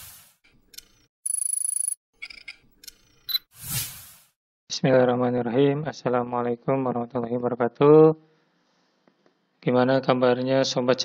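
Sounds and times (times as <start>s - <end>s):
fluttering electronic ring: 1.3s - 2.0s.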